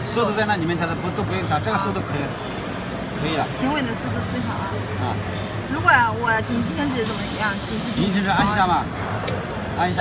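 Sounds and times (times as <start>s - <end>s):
compressed air hissing: 7.0s - 8.7s.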